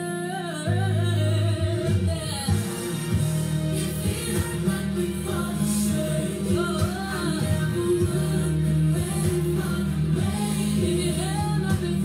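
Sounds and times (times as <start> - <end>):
gospel singing: 0.0 - 12.0
heavy bass line: 0.7 - 12.0.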